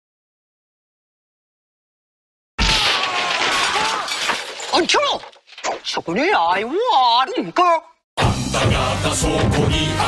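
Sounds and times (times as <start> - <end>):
crash of something shattering: 2.6 - 6.0.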